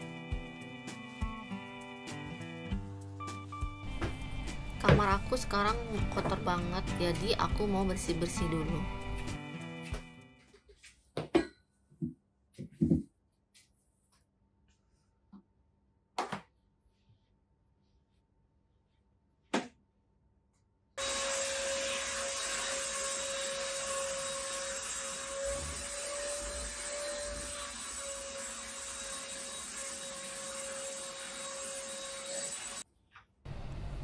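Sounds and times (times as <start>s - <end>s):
vacuum cleaner whining: 21.0s - 32.8s.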